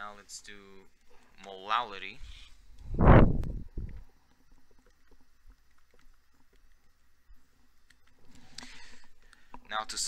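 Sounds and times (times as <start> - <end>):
faint small ticks: 2.6 - 9.7.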